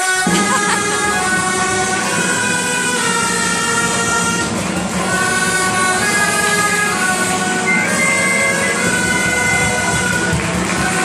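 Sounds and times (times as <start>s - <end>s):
double-reed shawms playing: 0.0s - 11.0s
people clapping along: 0.0s - 11.0s.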